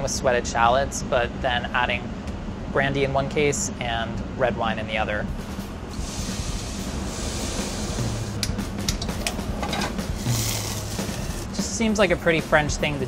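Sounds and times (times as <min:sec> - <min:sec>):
light background music: 0:02.6 - 0:13.0
flambe flare hiss: 0:05.8 - 0:08.9, 0:10.0 - 0:11.7
alcohol hissing in hot pan: 0:05.9 - 0:08.4.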